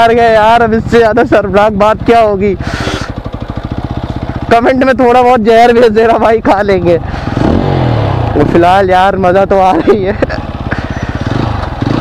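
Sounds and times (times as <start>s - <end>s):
motorcycle engine puttering: 0.0s - 12.0s.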